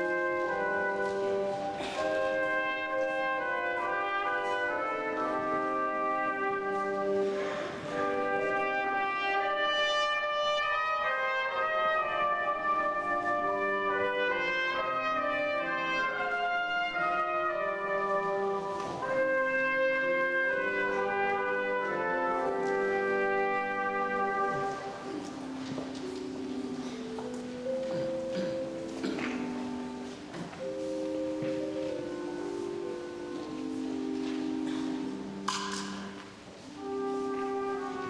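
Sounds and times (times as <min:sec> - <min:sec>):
brass ensemble playing chords: 0:00.0 - 0:38.0.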